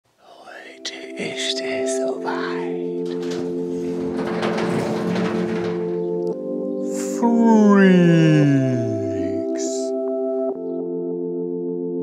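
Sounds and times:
large door scraping open: 2.9 - 7.0
ambient music chords: 9.9 - 12.0.

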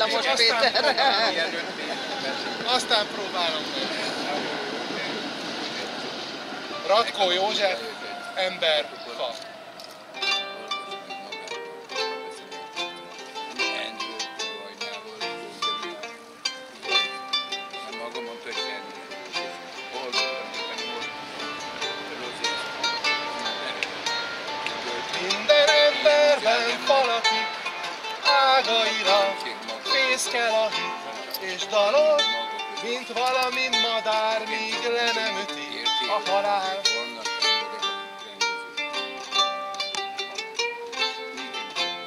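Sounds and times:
plucked string instrument: 0.0 - 42.0
man singing: 24.8 - 37.9.

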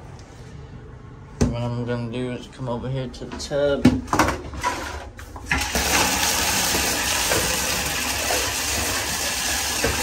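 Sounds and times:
water pouring into tub: 5.5 - 10.0.

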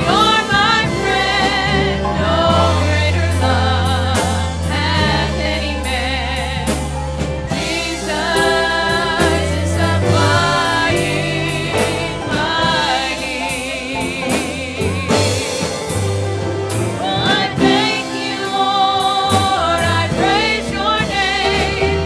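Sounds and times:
choir singing gospel: 0.0 - 22.0
deep bass line: 0.0 - 22.0
drum and cymbal hits: 0.0 - 22.0.

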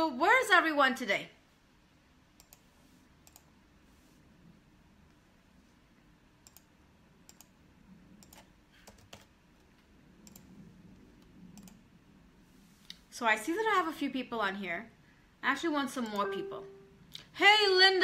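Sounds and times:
low room hum: 0.0 - 18.0
faint typing clicks: 6.4 - 7.6, 8.2 - 9.3, 10.2 - 10.6, 11.5 - 11.8.

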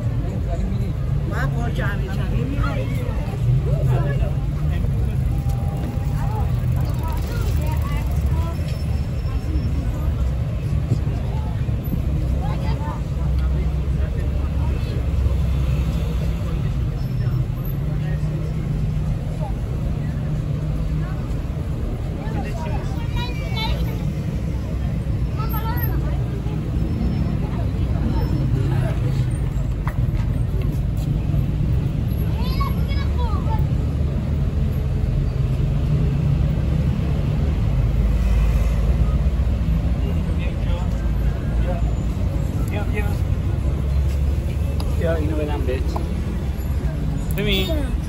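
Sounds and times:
passers-by talking: 0.0 - 48.0
road traffic rumble: 0.0 - 48.0.

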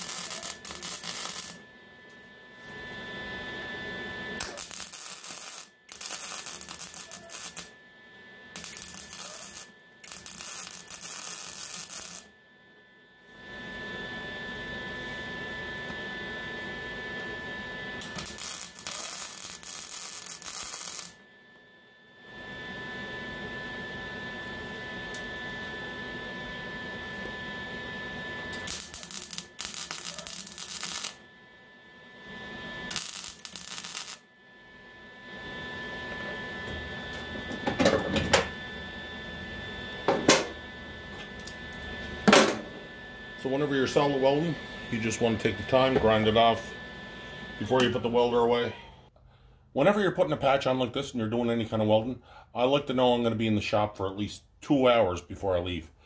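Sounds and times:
welder arc buzzing and crackling: 0.0 - 1.6, 4.3 - 7.8, 8.5 - 12.4, 18.0 - 21.2, 28.4 - 31.3, 32.2 - 34.3, 39.9 - 42.6.

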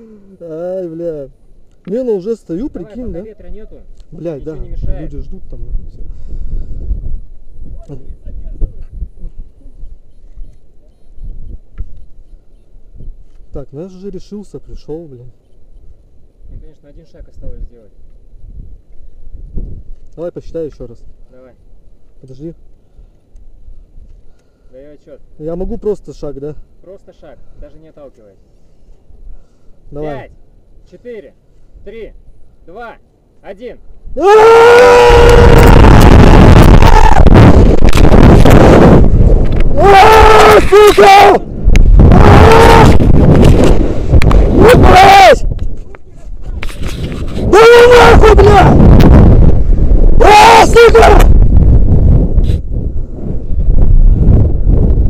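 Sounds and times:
wind buffeting microphone: 4.2 - 13.3, 15.8 - 20.0, 34.0 - 55.0
man yelling: 34.2 - 35.8, 39.8 - 41.4, 42.1 - 43.0, 44.6 - 45.5, 47.5 - 48.8, 50.2 - 51.3
man screaming: 34.2 - 37.4, 39.8 - 41.4, 42.1 - 43.0, 44.6 - 45.5, 47.5 - 48.8, 50.2 - 51.3.

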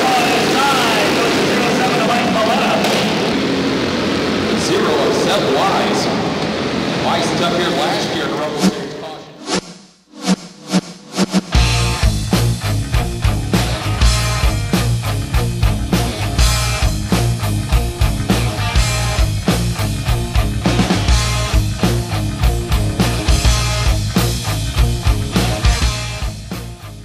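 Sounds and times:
race track noise: 0.0 - 9.6, 10.3 - 27.0
music with heavy drum beat: 9.6 - 27.0.

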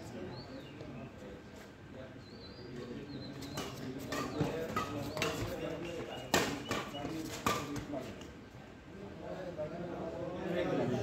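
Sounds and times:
racket striking shuttlecock: 6.3 - 7.8.

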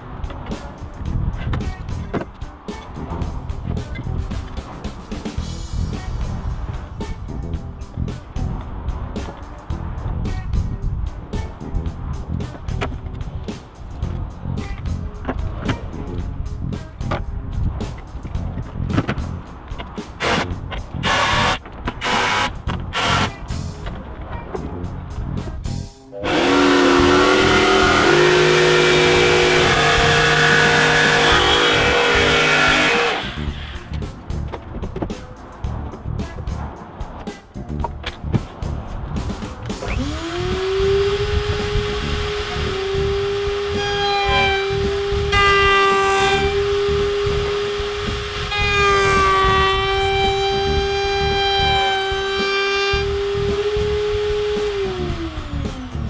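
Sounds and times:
background music with steady beat: 0.0 - 56.0
electric power tool motor running: 21.0 - 23.3, 26.2 - 33.8, 39.9 - 56.0.

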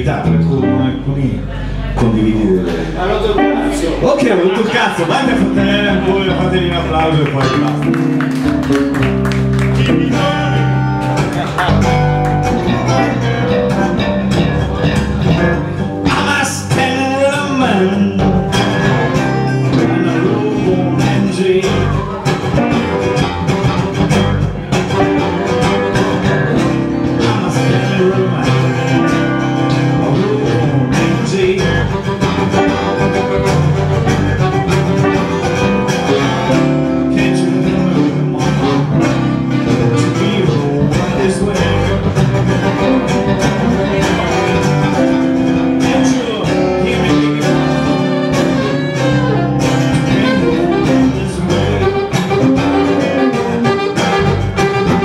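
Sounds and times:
guitars playing: 0.0 - 55.0
saxophone: 18.5 - 55.0.

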